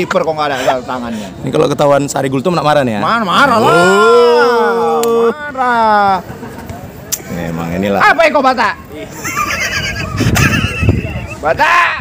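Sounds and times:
person laughing: 9.2 - 11.4.

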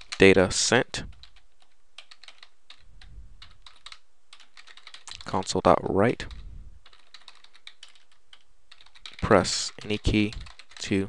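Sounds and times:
typing on computer keyboard: 1.1 - 5.2, 6.3 - 11.0.

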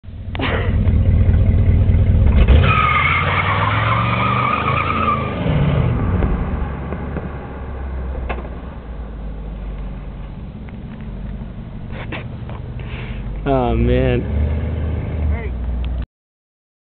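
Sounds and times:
car engine revving: 0.2 - 15.9
tyre squeal: 2.6 - 5.4.

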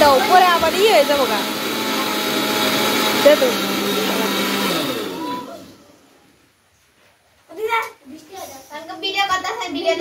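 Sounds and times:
electric mixer grinder running: 0.0 - 5.9.

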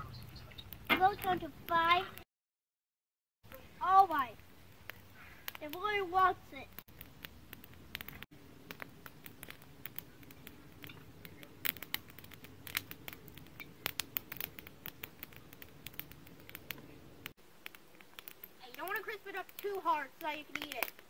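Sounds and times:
campfire crackling and popping: 0.0 - 2.2, 3.5 - 21.0
flame rushing: 3.7 - 21.0.

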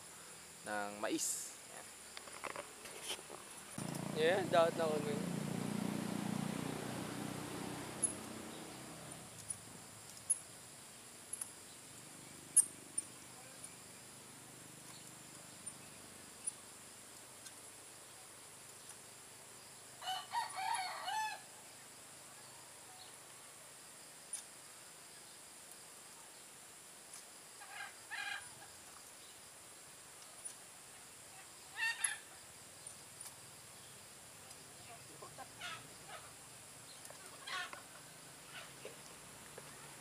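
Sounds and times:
high-pitched hiss: 0.0 - 40.0
faint bird calls: 27.6 - 28.8, 31.6 - 32.4, 34.7 - 40.0.

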